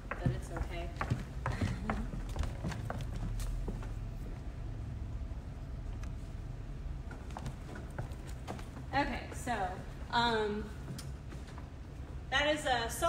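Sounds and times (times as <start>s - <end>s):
boot heels tapping on wood floor: 0.0s - 3.9s, 7.1s - 8.9s
steady low hum: 0.0s - 13.0s.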